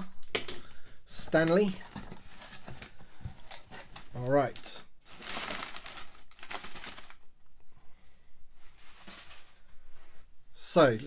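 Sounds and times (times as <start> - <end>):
packing paper crinkling: 1.4 - 7.3.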